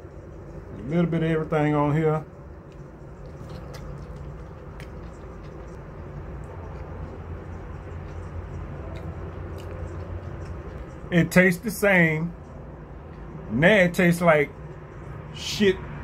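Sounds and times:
low room hum: 0:00.0 - 0:16.0
person chewing noodles: 0:02.3 - 0:11.7.

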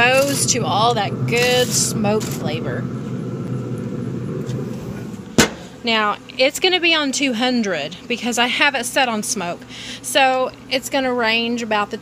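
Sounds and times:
smoker fan humming: 0:00.0 - 0:12.0.

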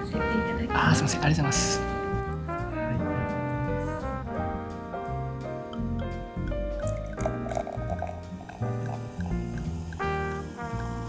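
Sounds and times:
jazz music with brass: 0:00.0 - 0:11.0
champagne pouring and foaming: 0:05.7 - 0:11.0.

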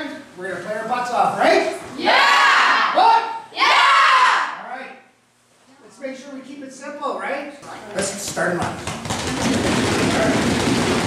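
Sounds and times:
dense clatter of quick hits: 0:08.8 - 0:11.0.

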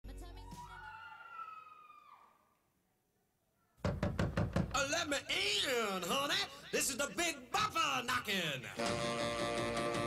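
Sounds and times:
wolf-like howl: 0:00.6 - 0:02.4
knocking: 0:03.8 - 0:04.8.

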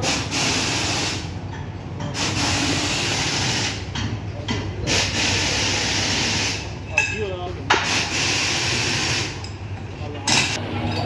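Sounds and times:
compressed air hissing: 0:00.0 - 0:01.4, 0:02.2 - 0:03.9, 0:04.8 - 0:06.7, 0:07.8 - 0:09.4.

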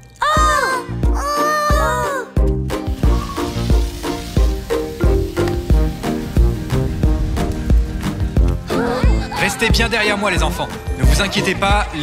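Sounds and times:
steady hiss: 0:02.8 - 0:08.7.

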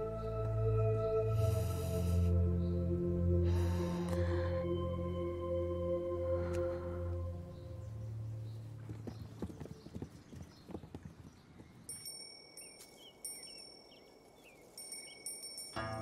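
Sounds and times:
birds chirping: 0:00.0 - 0:16.0
high steady ringing: 0:11.9 - 0:13.9, 0:14.8 - 0:16.0
plucked zither: 0:15.8 - 0:16.0.

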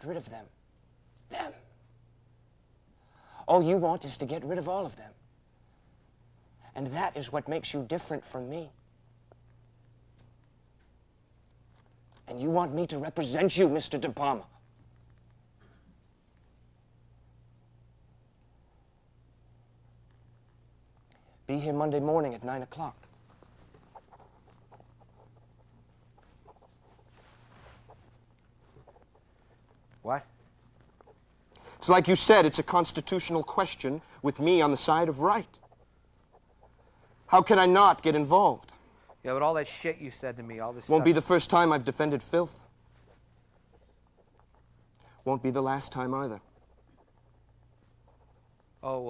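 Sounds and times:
low steady hum: 0:00.0 - 0:49.0
faint light scratches: 0:22.6 - 0:31.4, 0:42.4 - 0:48.8
man speaking: 0:30.0 - 0:30.3, 0:31.8 - 0:35.6, 0:37.3 - 0:42.6.

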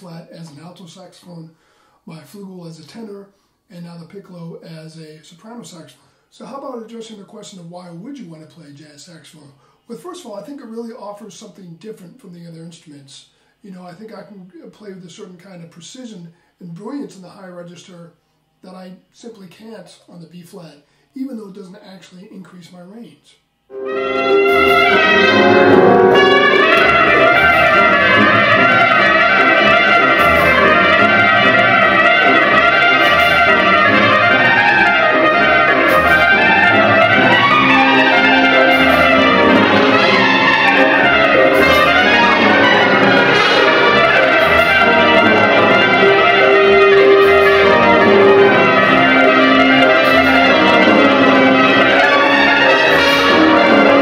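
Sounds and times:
solo trumpet playing fast runs: 0:23.7 - 0:54.0
wind band accompaniment: 0:23.7 - 0:54.0.

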